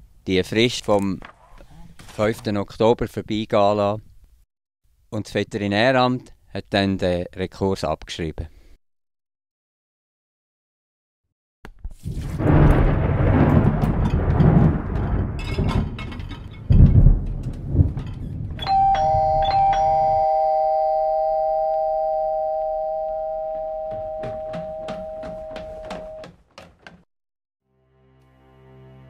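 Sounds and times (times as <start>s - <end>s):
two-tone doorbell chime: 18.6s - 26.2s.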